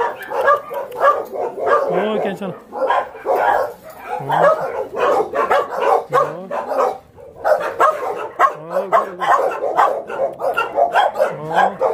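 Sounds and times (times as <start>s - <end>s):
dog barking: 0.0s - 11.9s.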